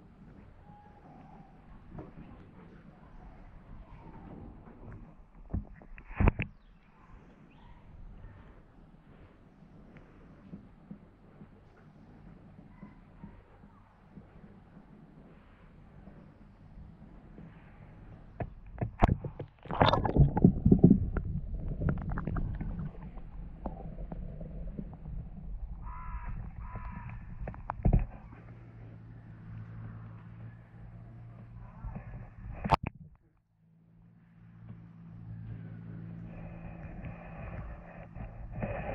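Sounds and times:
beaver feeding in water: 0.0s - 33.0s, 34.8s - 38.9s.

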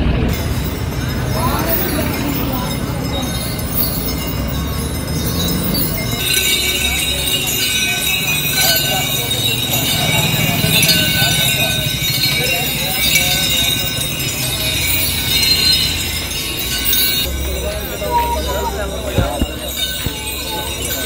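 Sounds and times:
people talking: 0.0s - 21.0s
chains and bells jingling: 0.3s - 21.0s.

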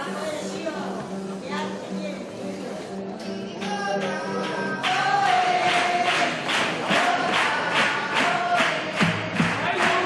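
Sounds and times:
group voices singing melody: 3.5s - 10.0s.

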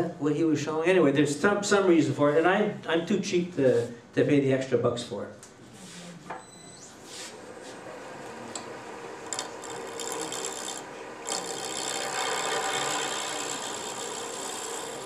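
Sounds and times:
lathe tool scraping wood: 7.1s - 15.0s.

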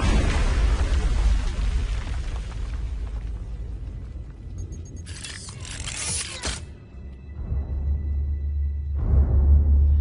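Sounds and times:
alien machinery whirring and ratcheting: 5.0s - 6.7s.

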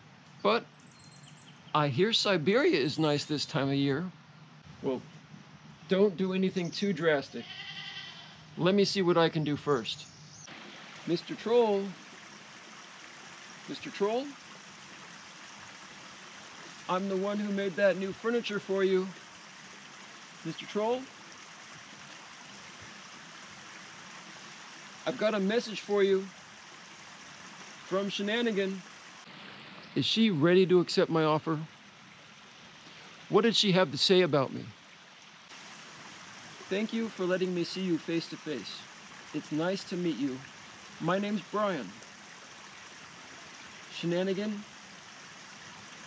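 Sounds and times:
stream water running: 0.0s - 46.0s.

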